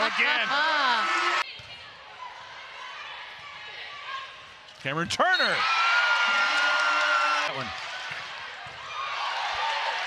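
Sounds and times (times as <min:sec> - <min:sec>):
crowd murmur in indoor arena: 0:00.0 - 0:10.0.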